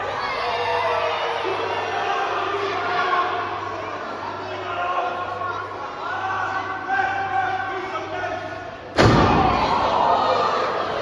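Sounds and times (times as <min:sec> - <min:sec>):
loud impact in wrestling ring: 0:09.0 - 0:10.0.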